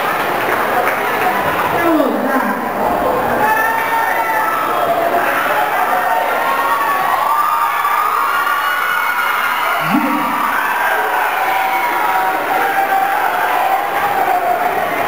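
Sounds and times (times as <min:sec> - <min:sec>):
audience cheering and shouting: 0:01.3 - 0:15.0.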